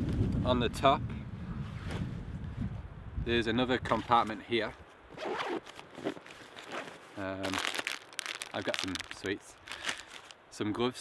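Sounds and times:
zip being pulled open: 0:05.1 - 0:07.9.

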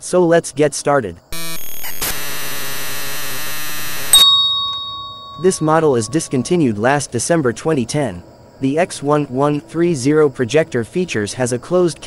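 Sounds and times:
bell-like hit ringing: 0:04.2 - 0:06.5.

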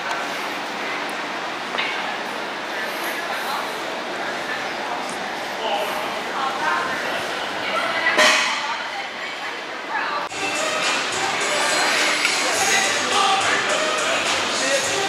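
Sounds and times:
indistinct voices: 0:02.7 - 0:15.0
background music: 0:10.3 - 0:15.0.

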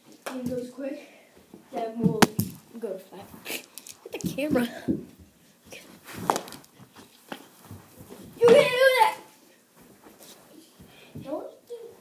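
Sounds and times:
child shouting: 0:08.4 - 0:09.3.

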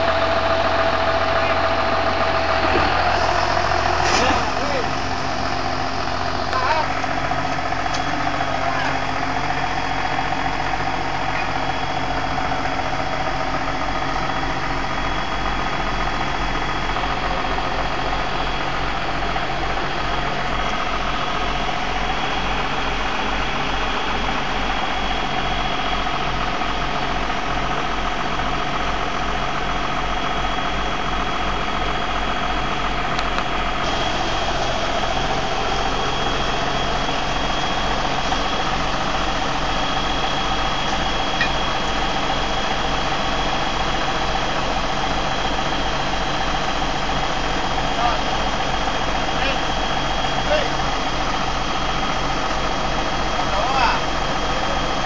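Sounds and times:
tractor diesel engine idling: 0:00.0 - 0:55.0.

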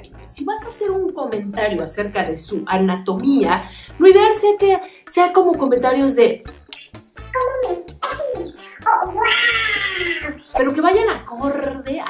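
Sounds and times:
music with steady beat: 0:05.2 - 0:12.0
cat meowing: 0:08.8 - 0:10.4.

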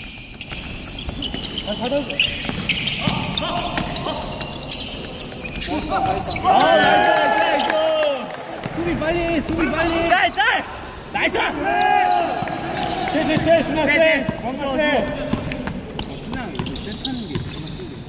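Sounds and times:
sneakers squeaking: 0:00.0 - 0:18.0.

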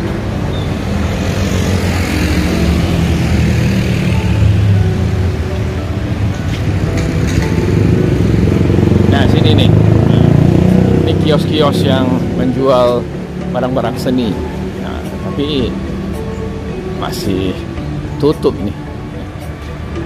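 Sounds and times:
scooters and cars passing: 0:00.0 - 0:20.0.

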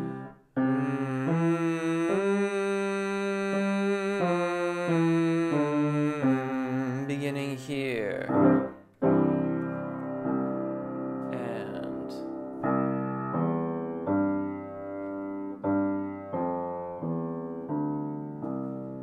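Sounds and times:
man singing warm-up scale: 0:00.0 - 0:08.5, 0:11.3 - 0:12.4
grand piano accompaniment: 0:00.0 - 0:19.0.

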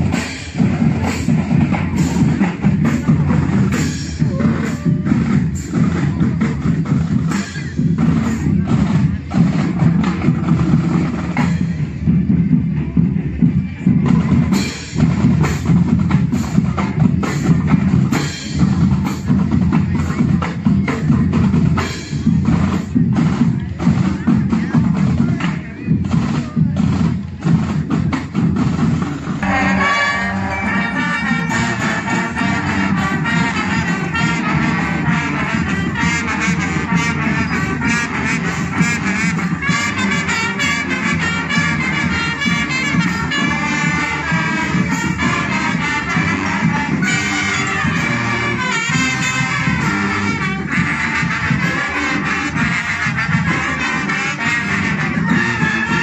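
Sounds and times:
marching band drums: 0:00.0 - 0:56.0
brass playing a tune: 0:29.4 - 0:56.0.

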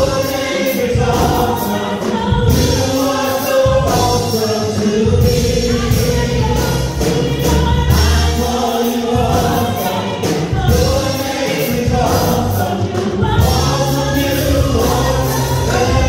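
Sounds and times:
gospel group singing: 0:00.0 - 0:16.0
instrumental accompaniment with bass: 0:00.0 - 0:16.0.

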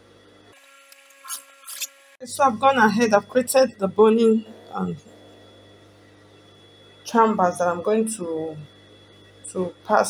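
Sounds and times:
thin high whine: 0:00.0 - 0:10.0
low hum: 0:02.2 - 0:10.0.

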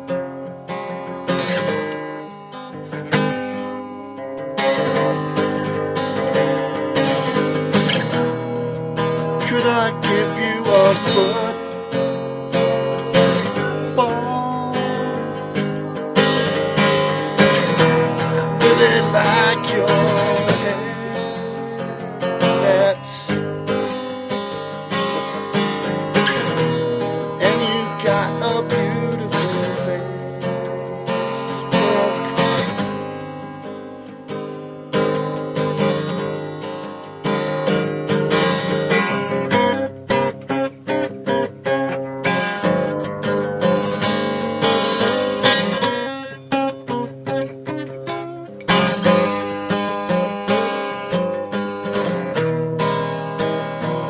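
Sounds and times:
acoustic guitar music: 0:00.0 - 0:54.0.

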